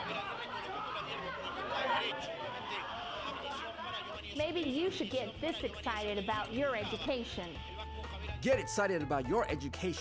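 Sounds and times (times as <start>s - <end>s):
people shouting and cheering: 0.0s - 6.5s.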